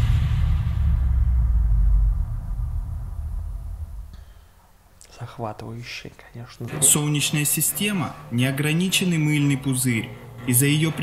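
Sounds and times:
deep bass rumble: 0.0s - 4.2s.

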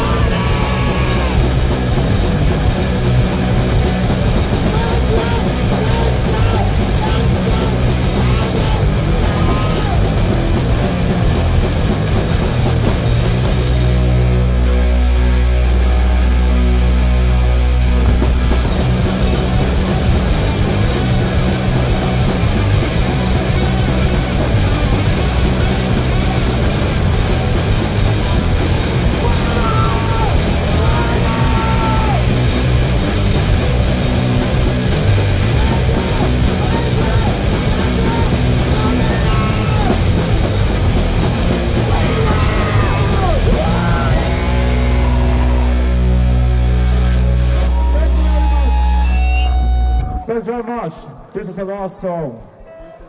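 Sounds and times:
shouted vocals: 0.0s - 1.8s, 3.3s - 10.4s, 28.0s - 40.5s, 41.4s - 46.3s
punk band playing live: 0.0s - 50.3s.

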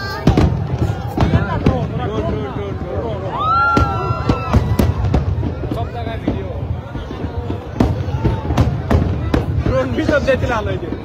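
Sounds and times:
crowd voices: 0.0s - 11.0s
fireworks bangs: 0.0s - 11.0s.

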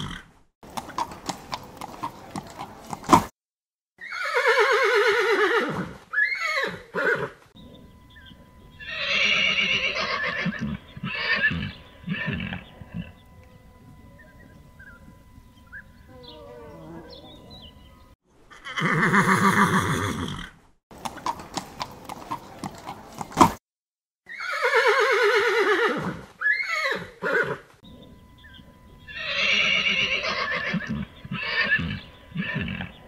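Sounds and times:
horses neighing: 0.0s - 3.3s, 4.0s - 7.4s, 8.8s - 13.2s, 18.5s - 23.3s, 24.3s - 27.6s, 29.1s - 33.0s.

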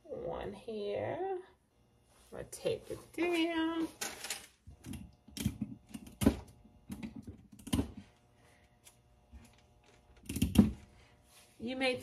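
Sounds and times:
tape being pulled and torn: 8.8s - 10.8s.

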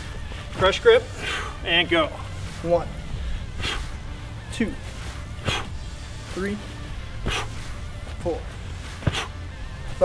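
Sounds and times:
sharp forceful exhale: 5.4s - 6.0s.

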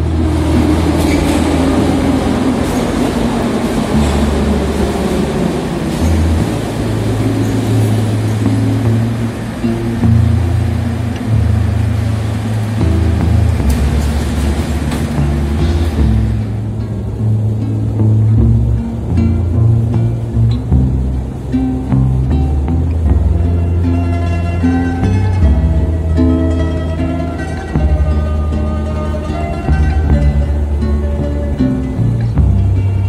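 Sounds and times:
background music with slow bass: 0.0s - 33.0s
metro train running: 0.0s - 33.0s.

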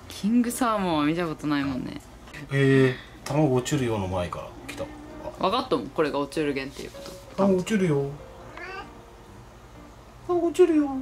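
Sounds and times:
cat meowing: 8.5s - 9.0s.

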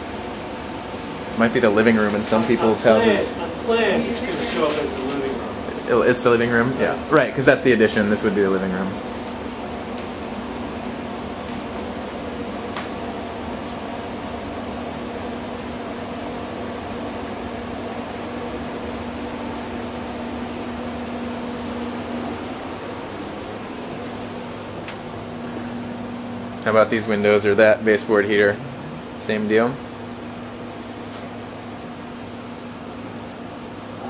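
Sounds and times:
fan rushing with low hum: 0.0s - 34.0s.

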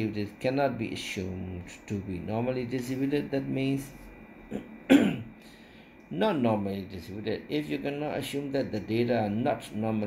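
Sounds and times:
man clearing his throat: 4.5s - 5.4s.

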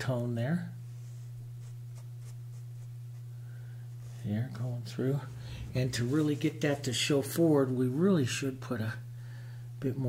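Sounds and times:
steady low hum: 0.0s - 10.0s
paintbrush scratching on canvas: 0.9s - 3.3s.

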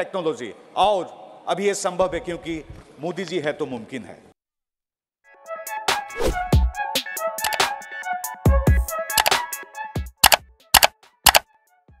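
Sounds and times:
sharp double clicks: 7.4s - 7.6s, 9.2s - 9.4s, 10.2s - 11.4s.

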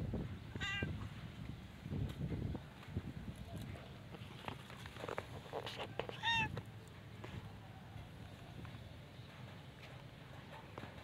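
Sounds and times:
cat meowing: 0.5s - 1.0s, 6.1s - 6.6s.

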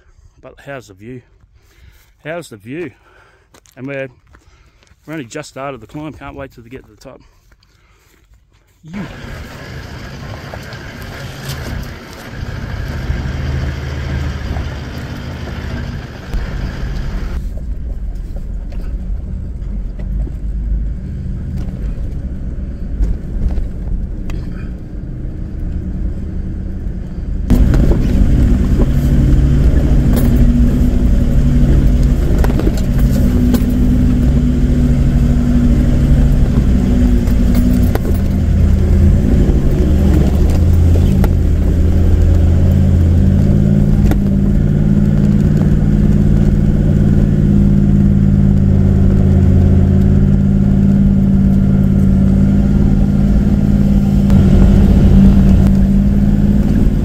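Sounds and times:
vehicle engine pulling under load: 8.9s - 57.0s
knocks and rattles: 27.5s - 47.2s.

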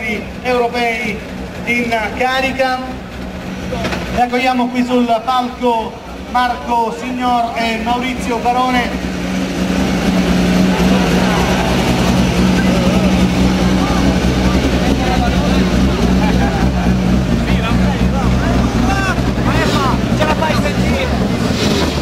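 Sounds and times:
car engine idling: 0.0s - 22.0s
crowd voices: 0.0s - 22.0s.

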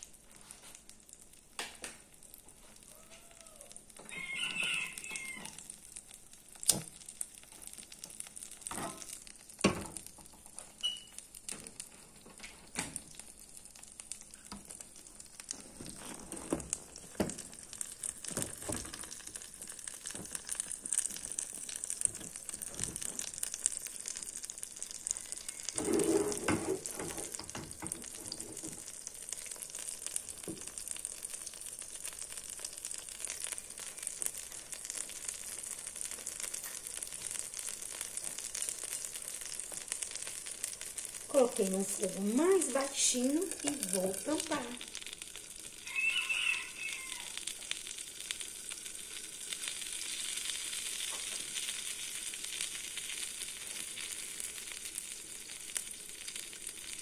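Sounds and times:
batter sizzling in a skillet: 0.0s - 57.0s.

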